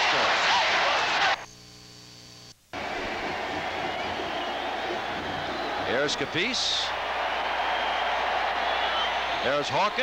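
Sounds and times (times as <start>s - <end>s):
stadium crowd noise: 0.0s - 1.5s, 2.7s - 10.0s
low electrical hum: 1.4s - 9.4s.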